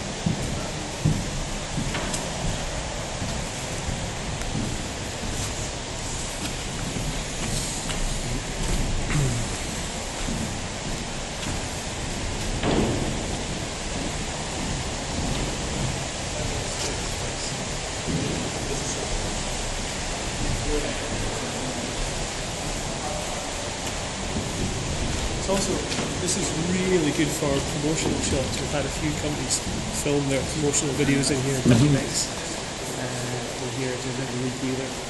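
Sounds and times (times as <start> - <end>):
rushing water noise: 0.0 - 35.0
faint voices: 20.3 - 24.7, 25.4 - 35.0.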